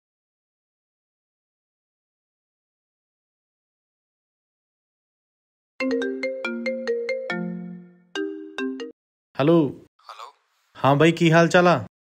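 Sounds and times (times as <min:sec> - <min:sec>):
plucked phone ringtone melody: 0:05.8 - 0:09.0.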